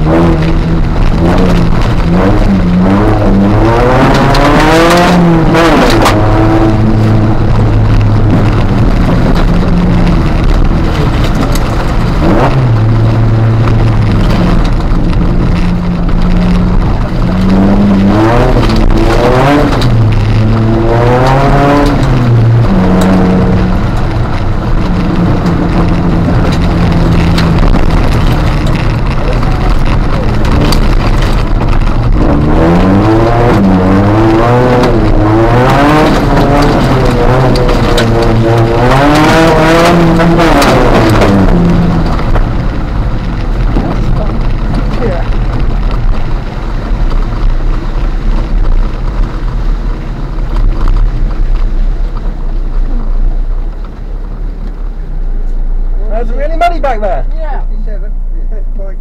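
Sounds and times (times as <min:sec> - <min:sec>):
car engine revving: 0:00.0 - 0:59.0
tyre and gravel noise: 0:00.0 - 0:59.0.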